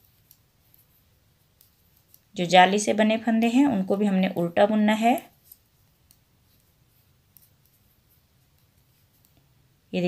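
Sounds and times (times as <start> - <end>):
knitting needles clicking: 0.0 - 2.4, 5.0 - 9.5.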